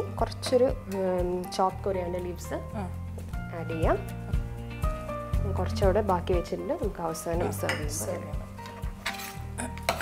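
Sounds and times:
metal spoon scraping a pan: 0:07.6 - 0:10.0.

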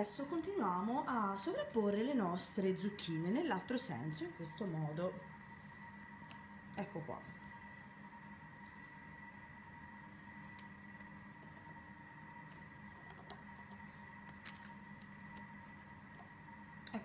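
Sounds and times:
faint high whine: 0:00.0 - 0:17.0.

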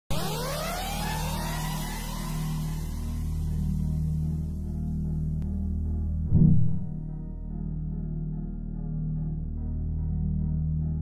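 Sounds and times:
synthesized whoosh with rising tones: 0:00.1 - 0:05.4
ambient music: 0:00.1 - 0:11.0
low synth drone: 0:00.1 - 0:11.0.

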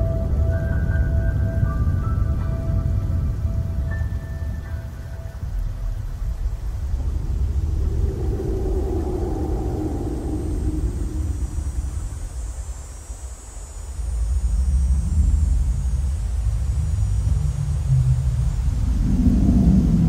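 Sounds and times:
deep rumbling bass drone: 0:05.4 - 0:12.9, 0:14.0 - 0:20.0.

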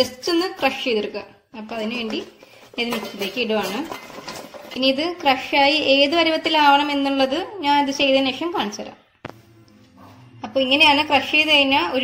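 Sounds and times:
steel plate clattering against metal jar: 0:02.5 - 0:04.9.

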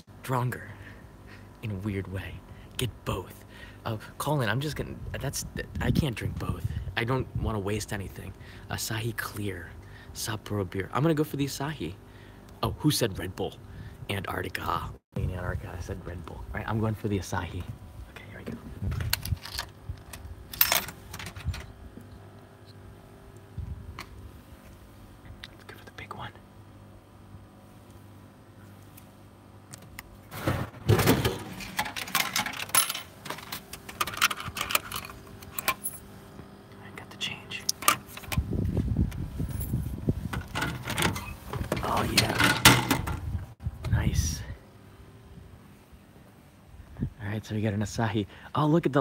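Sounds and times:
coins clinking into coin slot: 0:20.5 - 0:21.6, 0:31.6 - 0:36.0.

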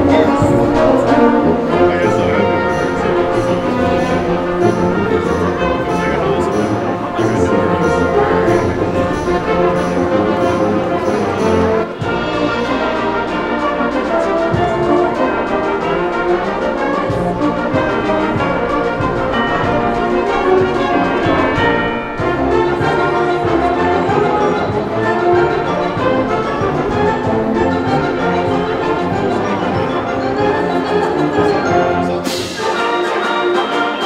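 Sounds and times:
concert band playing: 0:00.0 - 0:34.0.

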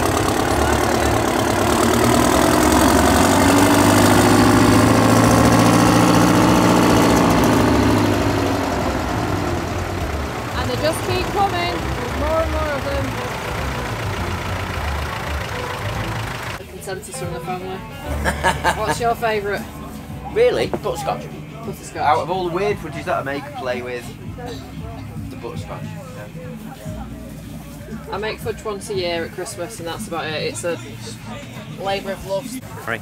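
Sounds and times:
voices: 0:00.0 - 0:05.0, 0:07.2 - 0:33.0
tractor engine driving past: 0:00.0 - 0:16.6
smaller tractor engine: 0:00.0 - 0:16.7.

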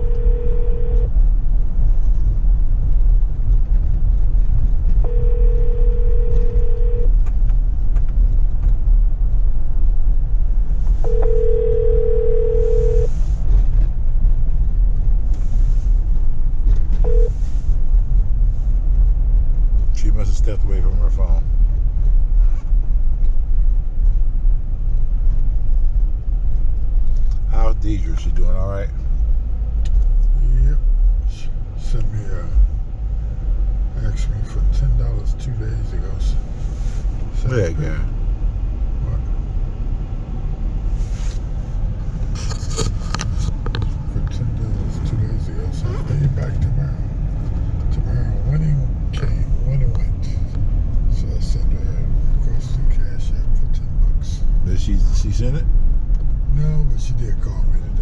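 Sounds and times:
short beep: 0:00.0 - 0:01.1, 0:05.0 - 0:07.1, 0:11.0 - 0:13.1, 0:17.0 - 0:17.4
telephone ringback tone: 0:00.0 - 0:01.1, 0:05.1 - 0:07.1, 0:11.1 - 0:13.1, 0:17.1 - 0:17.3
car road and engine rumble: 0:00.0 - 0:58.0.

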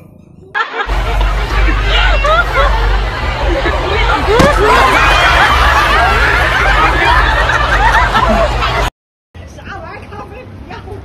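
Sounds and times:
people chattering: 0:00.9 - 0:11.0.

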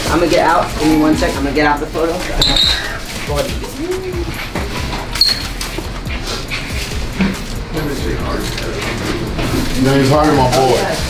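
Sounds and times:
background chatter: 0:00.0 - 0:11.0
music playing: 0:00.0 - 0:11.0.

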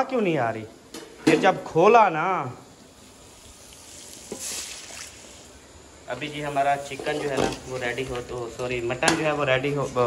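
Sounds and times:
meat sizzling in a pot: 0:02.9 - 0:08.2.

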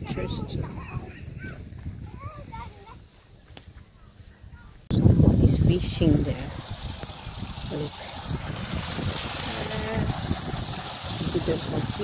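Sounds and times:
stream splashing over rocks: 0:05.8 - 0:12.0.

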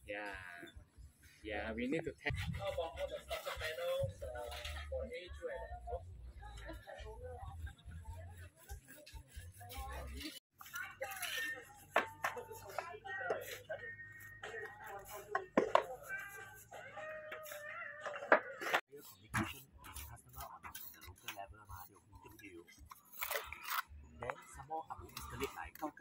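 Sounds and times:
people talking: 0:01.5 - 0:26.0.

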